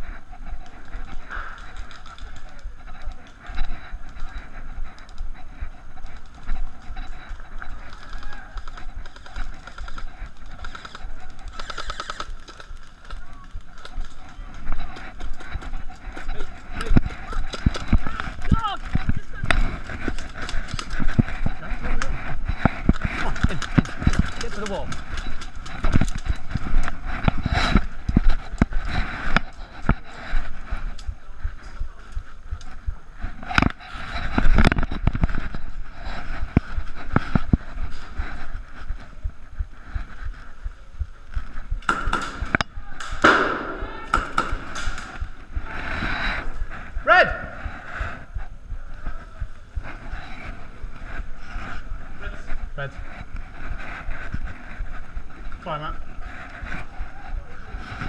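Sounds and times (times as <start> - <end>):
footsteps clicking and knocking: 0.0 - 47.0
indistinct voices: 0.0 - 58.0.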